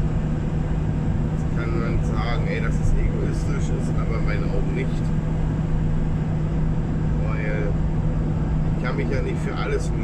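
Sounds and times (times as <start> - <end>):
van road and engine drone: 0.0 - 10.0.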